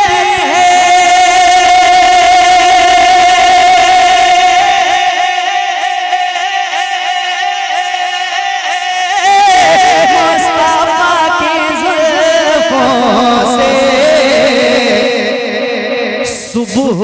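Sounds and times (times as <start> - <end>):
man singing into a microphone: 0.0 - 17.0.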